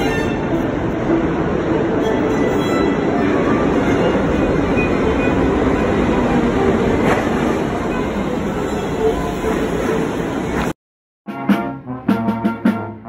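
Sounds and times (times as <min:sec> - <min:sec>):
subway train rumbling: 0:00.0 - 0:10.8.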